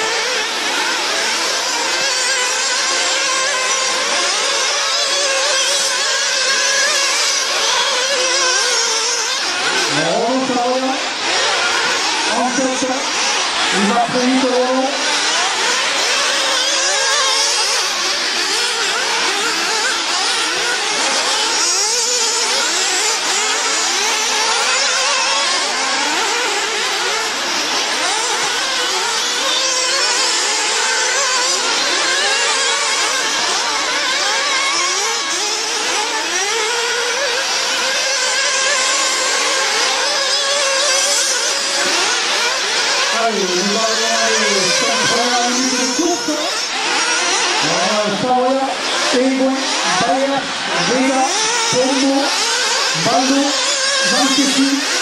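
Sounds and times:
rc car engines revving: 0:00.0 - 0:55.0.

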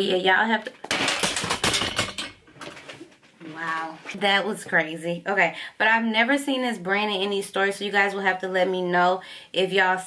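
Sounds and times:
objects clattering and falling: 0:00.8 - 0:03.4.

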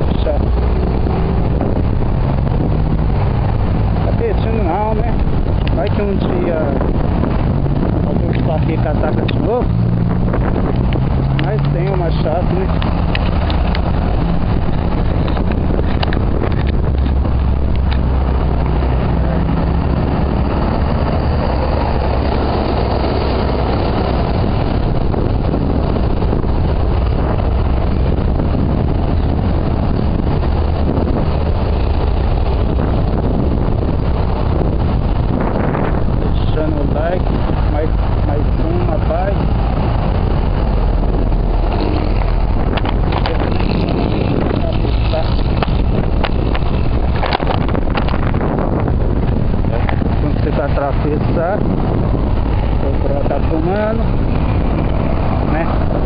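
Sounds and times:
passing road traffic: 0:00.0 - 0:56.0
wind rumble on microphone: 0:00.0 - 0:56.0.

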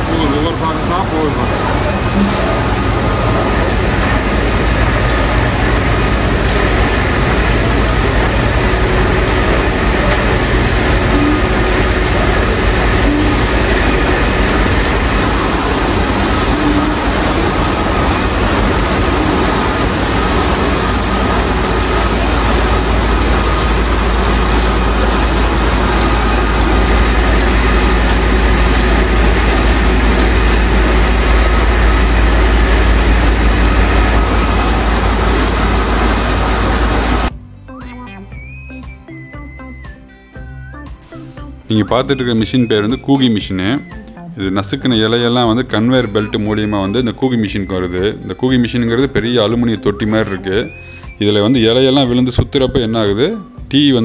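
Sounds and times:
machinery running loudly: 0:00.0 - 0:37.4, 0:41.0 - 0:54.0
low hum: 0:00.0 - 0:39.8
steady tones: 0:00.0 - 0:54.0.

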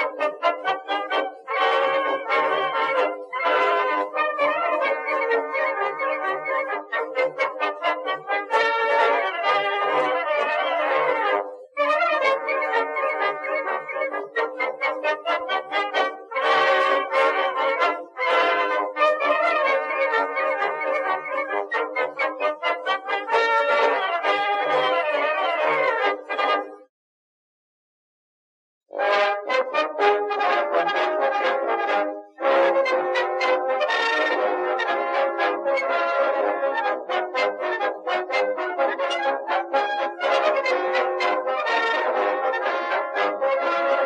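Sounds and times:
brass band playing: 0:00.0 - 0:26.8, 0:28.9 - 0:44.0.

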